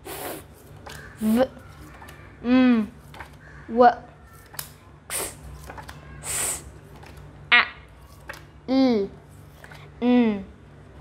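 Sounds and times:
short hissing sounds: 0.0s - 0.6s, 5.1s - 5.5s, 6.2s - 6.7s
woman voicing phonics sounds: 1.2s - 1.6s, 2.4s - 3.0s, 7.4s - 7.9s, 8.7s - 9.2s, 10.0s - 10.6s.

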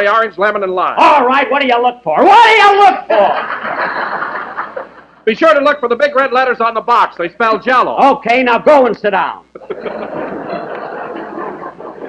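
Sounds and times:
studio audience laughing: 3.1s - 5.2s, 9.6s - 12.0s.

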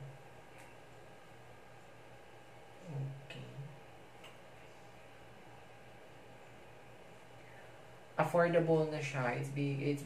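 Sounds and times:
low hummed vocal sound: 0.0s - 0.8s, 2.7s - 5.3s
low background hum: 0.0s - 10.0s.

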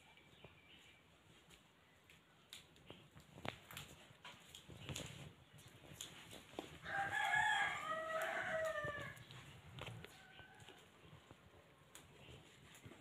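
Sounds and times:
rooster crowing: 6.8s - 9.2s
faint clicks and knocks: 8.1s - 13.0s.

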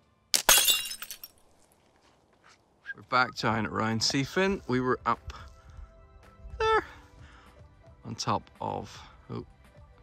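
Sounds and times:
glass breaking: 0.3s - 1.5s.

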